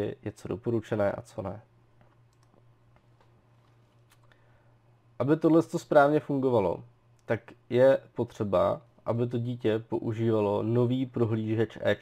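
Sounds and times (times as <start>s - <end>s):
low steady hum: 0.0s - 12.0s
computer mouse clicks: 2.0s - 4.2s.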